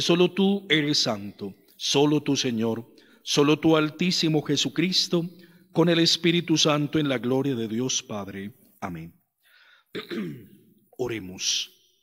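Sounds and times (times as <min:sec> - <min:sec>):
man clearing his throat: 0:10.0 - 0:10.7.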